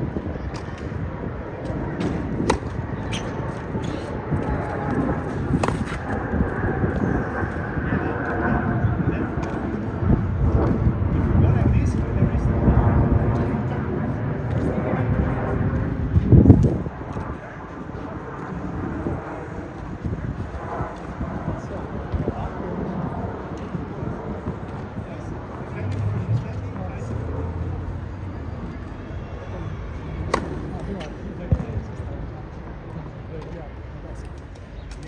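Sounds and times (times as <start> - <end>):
racket striking tennis ball: 2.0 - 3.3, 5.6 - 6.0, 30.3 - 30.5.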